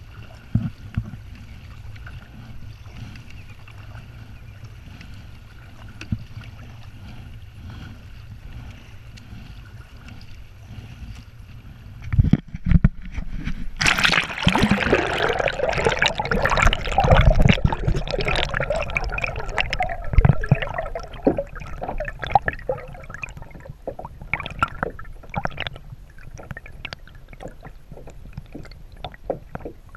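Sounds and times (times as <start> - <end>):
water lapping against kayak hull: 0.0 - 29.9
low steady rumble: 13.6 - 29.9
small clicks and pops: 23.2 - 29.9.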